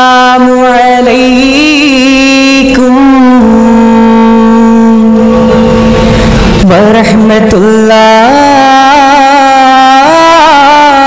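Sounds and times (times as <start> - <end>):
person singing a long chant note: 0.0 - 11.0.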